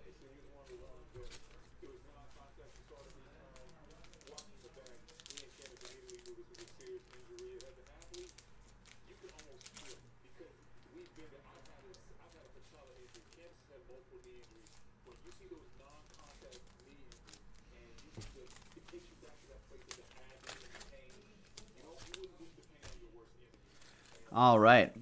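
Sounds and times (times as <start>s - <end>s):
foil wrapper tearing and crinkling: 2.8s - 10.0s, 14.2s - 17.6s, 18.4s - 23.0s.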